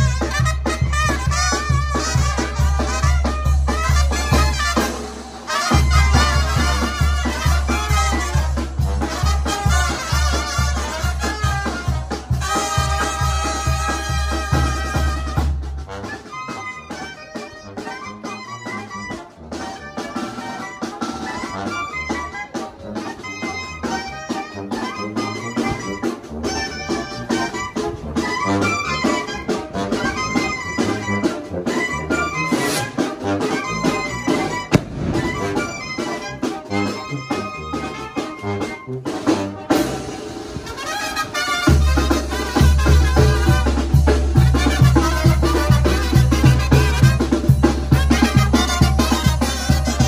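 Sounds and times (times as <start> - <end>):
steady drum beat: 0.0 - 16.1, 28.0 - 37.4, 38.0 - 50.0
trumpets and trombones: 0.0 - 50.0.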